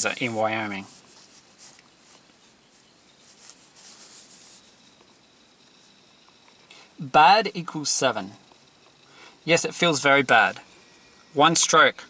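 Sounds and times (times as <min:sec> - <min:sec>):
paper sheet rustling: 0:00.7 - 0:04.7.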